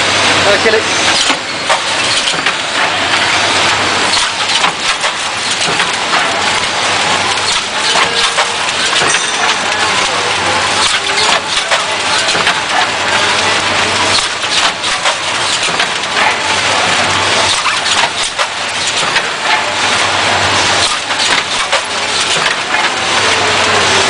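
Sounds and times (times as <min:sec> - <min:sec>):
machine clattering: 0:00.0 - 0:24.0.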